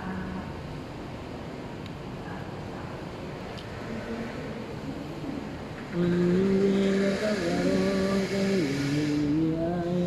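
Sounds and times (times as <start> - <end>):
man chanting melodically: 5.9 - 10.0.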